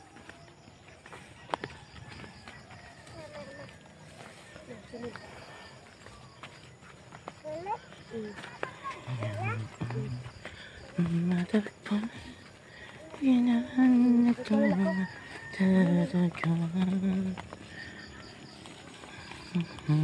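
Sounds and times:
person speaking: 8.1s - 10.3s.

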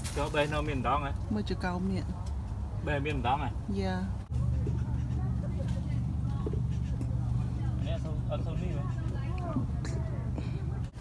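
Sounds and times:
distant voices talking: 0.0s - 11.0s.

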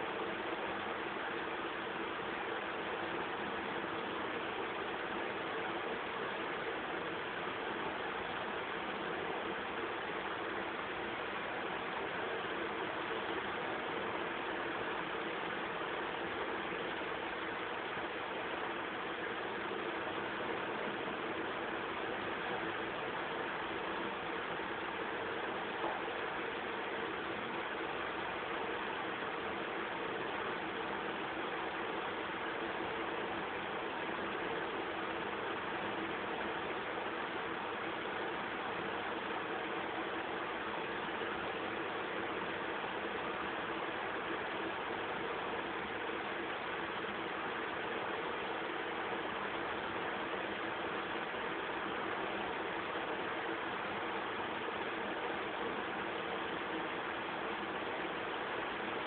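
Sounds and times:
steady static hiss: 0.0s - 59.0s.

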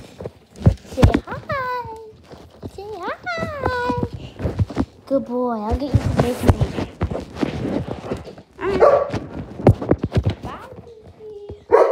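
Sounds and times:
knocks and rustles: 0.0s - 11.9s
dog barking: 8.6s - 9.2s, 11.7s - 11.9s.

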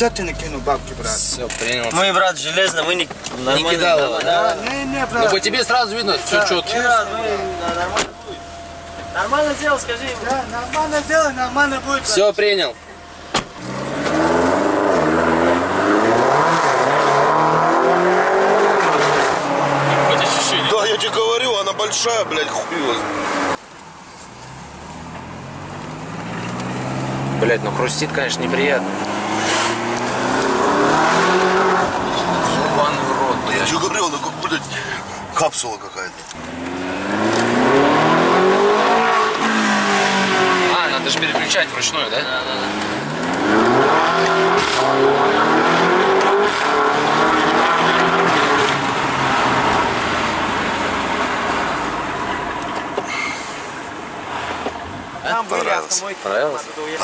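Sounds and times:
car engine humming: 0.0s - 57.0s
road noise: 0.0s - 57.0s.

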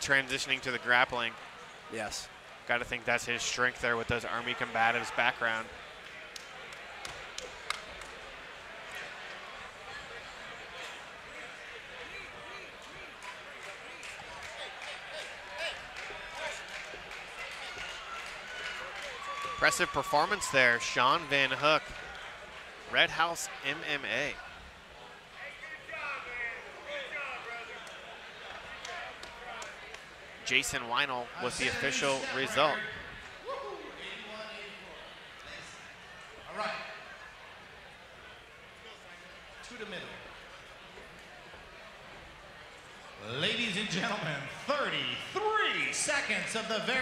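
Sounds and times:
crowd chatter: 0.0s - 47.0s.

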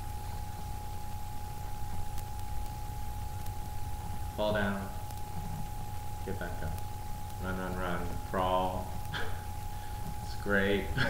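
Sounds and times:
steady low hum: 0.0s - 11.0s
thin constant tone: 0.0s - 11.0s.

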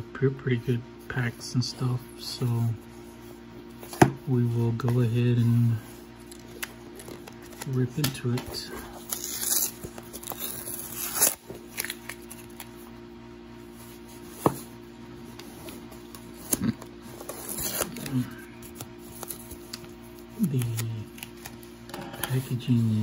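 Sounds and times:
packing tape ripping: 9.0s - 12.7s, 16.1s - 19.8s, 20.4s - 21.6s.

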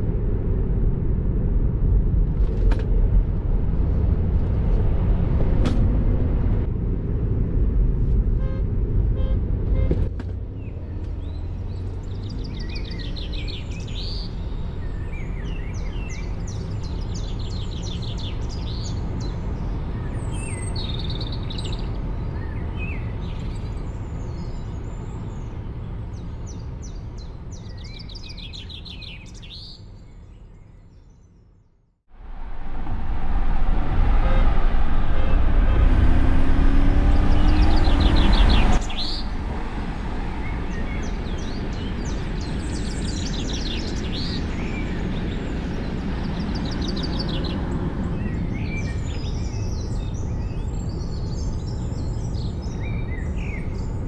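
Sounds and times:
tyre and road noise in car cabin: 0.2s - 14.2s
birds chirping and singing: 11.2s - 25.6s, 36.7s - 39.3s.

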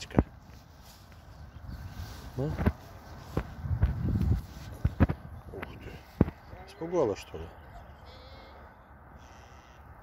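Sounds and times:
footsteps on grass: 0.0s - 6.6s.

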